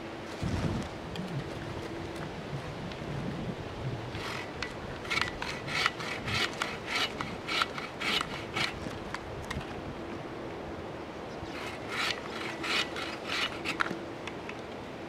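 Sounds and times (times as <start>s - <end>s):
bow saw cutting branch: 4.1s - 9.0s, 11.5s - 14.0s.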